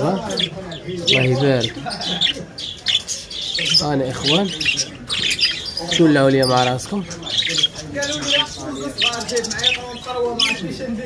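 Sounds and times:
lovebirds chirping: 0.0 - 11.0.

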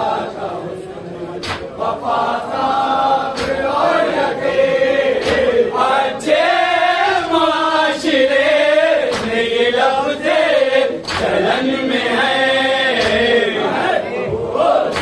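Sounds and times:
men chanting together: 0.0 - 15.0
sharp slaps: 1.4 - 2.0, 3.3 - 3.8, 5.2 - 5.6, 9.0 - 9.5, 11.0 - 11.5, 12.9 - 13.3.

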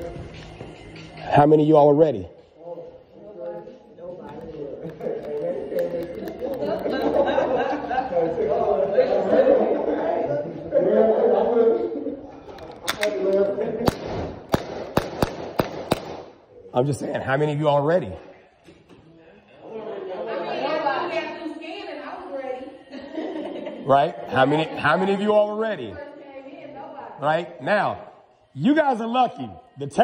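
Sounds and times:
background chatter of people: 0.0 - 30.0.

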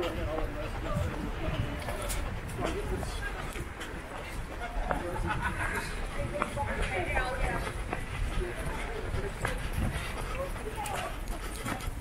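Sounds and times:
faint background voices: 0.0 - 12.0
footsteps on pavement: 0.0 - 12.0
low road rumble: 0.0 - 12.0.

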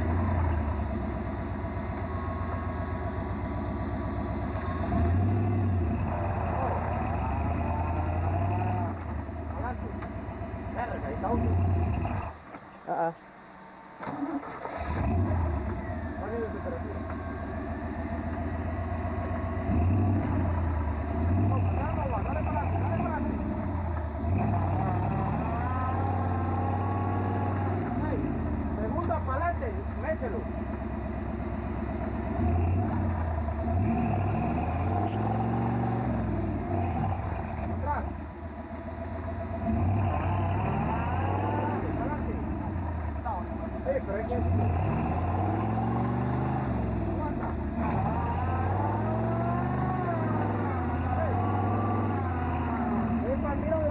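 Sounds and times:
tyres churning in mud: 2.3 - 12.4, 14.0 - 53.9
engine revving hard: 4.5 - 10.1, 10.7 - 12.4, 14.1 - 38.3, 39.0 - 53.9.

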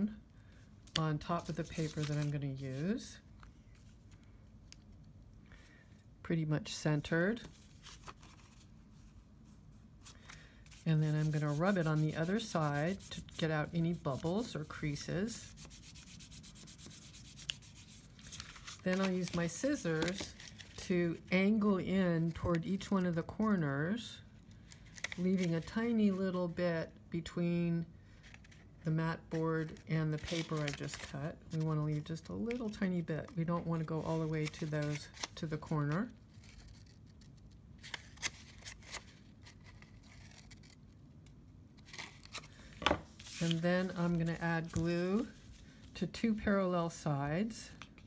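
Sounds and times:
hand rubbing over paper: 10.6 - 19.4.

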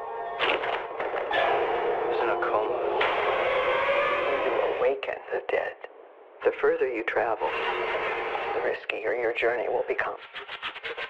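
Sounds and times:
voice through small speaker: 2.1 - 3.0, 4.8 - 7.6, 8.4 - 10.4.

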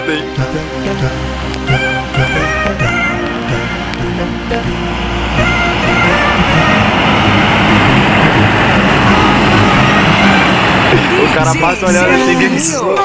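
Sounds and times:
background music: 0.0 - 13.0
tyres rushing on wet asphalt: 0.0 - 13.0.

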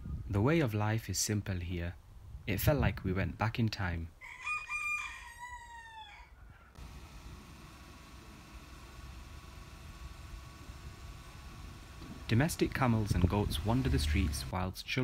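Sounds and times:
rooster crowing: 4.2 - 6.4.

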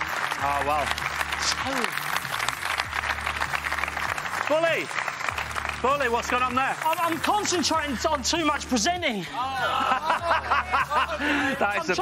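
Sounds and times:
crowd clapping: 0.0 - 8.2.

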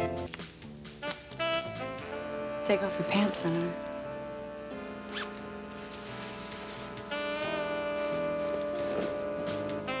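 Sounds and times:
soft music with held chords: 0.0 - 10.0
trouser zipper undone: 5.1 - 5.4.

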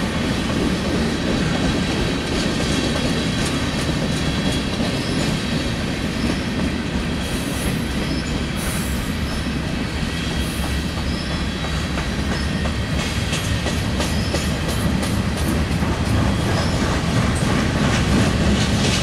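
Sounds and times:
freight cars rumbling on rails: 0.0 - 19.0
wheels clacking over rail joints: 10.6 - 19.0.

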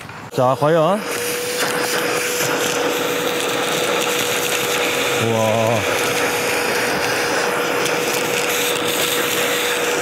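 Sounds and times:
vacuum cleaner running: 0.3 - 10.0
screws sucked into nozzle: 1.0 - 10.0.

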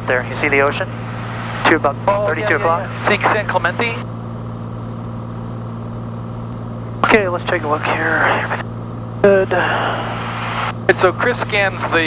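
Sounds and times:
airplane engine drone in cabin: 4.0 - 12.0.

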